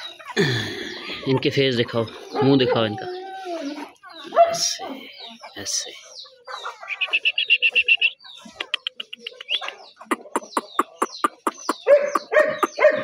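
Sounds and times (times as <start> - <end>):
bird trilling: 6.6 - 13.0.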